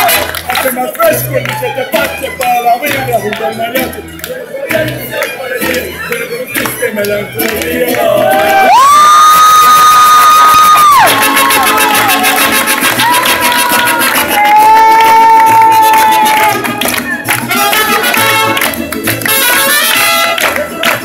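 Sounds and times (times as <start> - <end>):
crowd cheering: 0.0 - 21.0
crowd clapping: 0.0 - 21.0
mariachi band playing: 0.0 - 21.0.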